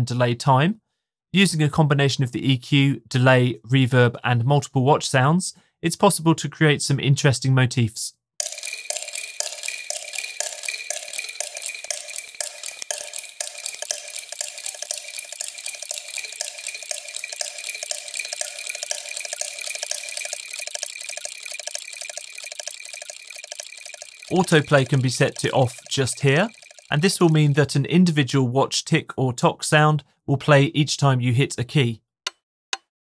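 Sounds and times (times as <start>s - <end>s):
pocket watch ticking: 8.4s - 27.8s.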